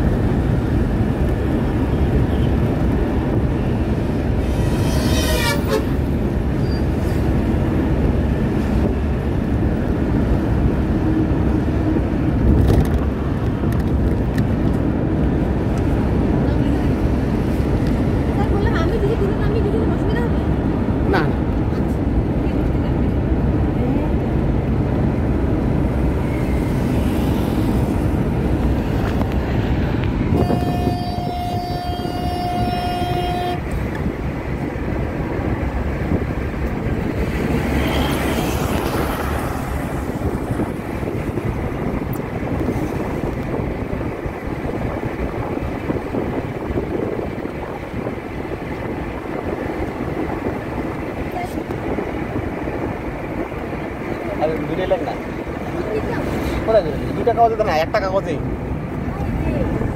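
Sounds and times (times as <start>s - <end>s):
road and wind noise: 0.0s - 59.9s
vehicle horn long note: 4.6s - 6.0s, 30.4s - 33.8s.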